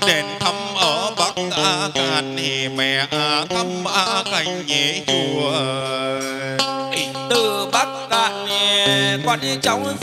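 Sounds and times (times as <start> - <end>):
person singing a lament: 0.0 - 10.0.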